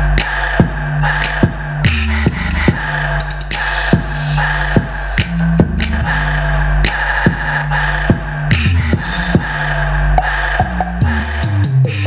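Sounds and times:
deep bass line: 0.0 - 12.0.

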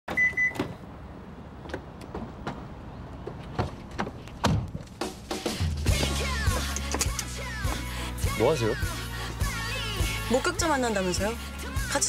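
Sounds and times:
car lock beeps: 0.1 - 0.7.

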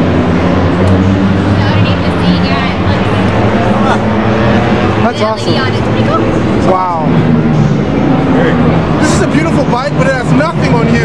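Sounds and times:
event noise: 0.0 - 11.0.

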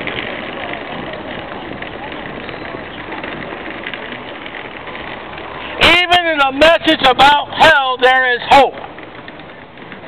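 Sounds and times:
outdoor street background noise: 0.0 - 10.0
person preaching: 5.8 - 8.8.

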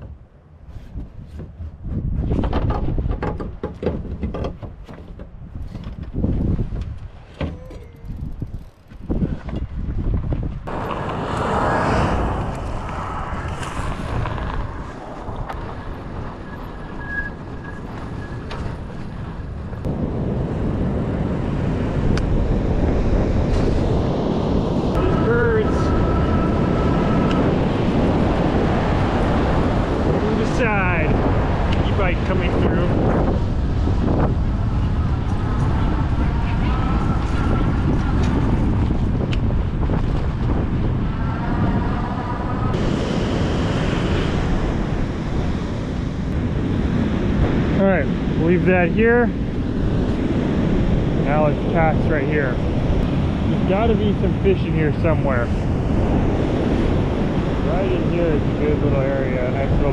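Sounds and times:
tyres on dirt track: 0.0 - 59.9
wind on microphone: 0.0 - 59.9
bike knocking and clattering: 1.3 - 11.0.

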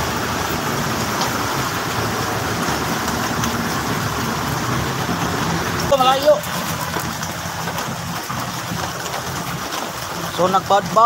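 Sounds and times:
floodwater rushing: 0.0 - 11.0
traffic engine hum: 0.0 - 11.0.

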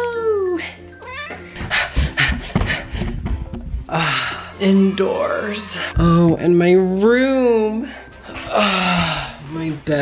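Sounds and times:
cat meowing: 1.0 - 1.6
low thumps: 1.6 - 4.0.

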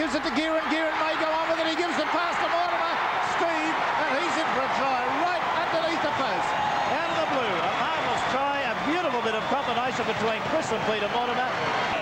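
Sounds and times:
man talking: 0.0 - 11.5
crowd noise: 0.0 - 12.0.

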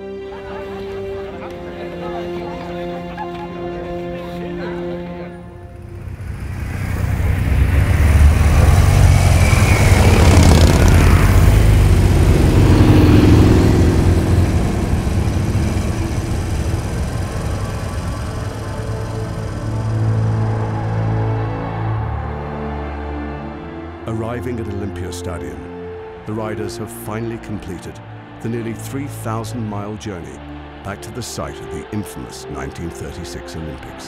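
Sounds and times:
background music: 0.0 - 34.0
motorcycles riding past: 5.4 - 23.9.

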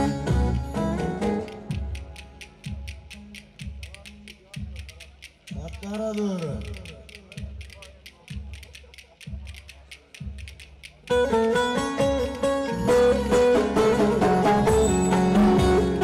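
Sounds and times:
fast sharp clicks: 1.3 - 12.5.

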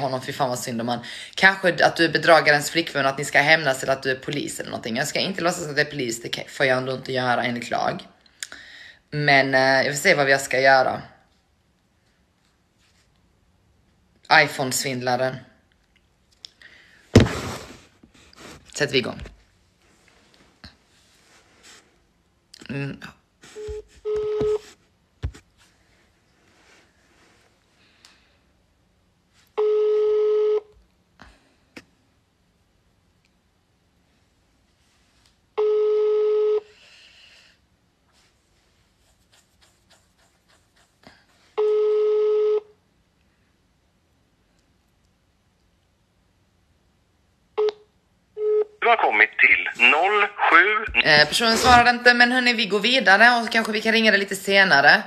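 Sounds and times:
woman talking: 0.0 - 8.1, 18.8 - 19.3, 49.5 - 55.0
phone beeps: 23.6 - 24.6, 47.6 - 50.0
telephone line beeps: 23.6 - 24.6, 29.6 - 30.7, 35.6 - 36.7, 41.6 - 42.7
phone ringing tone: 23.7 - 24.6, 29.6 - 30.7, 35.6 - 36.7, 41.6 - 42.7.

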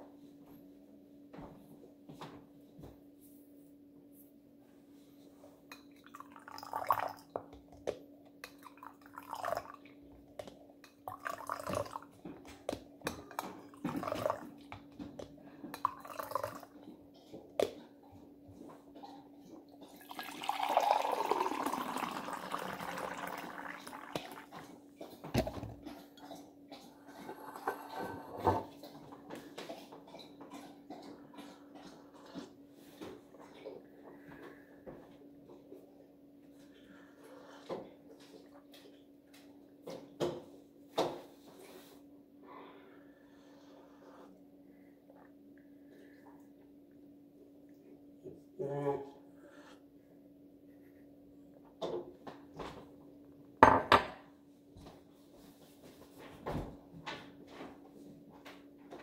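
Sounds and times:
tea pouring into a mug: 6.0 - 7.4, 8.4 - 9.8, 11.1 - 12.1, 15.8 - 16.7, 19.9 - 24.7
small liquid sounds: 8.4 - 12.2, 19.8 - 27.4.

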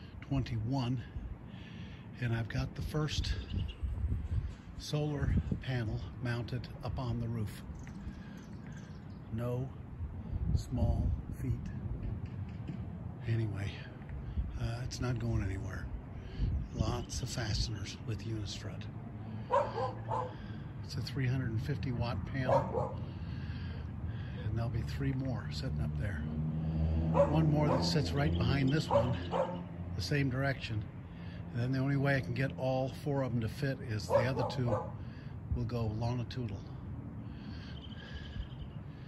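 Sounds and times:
outdoor background noise: 0.0 - 39.0.

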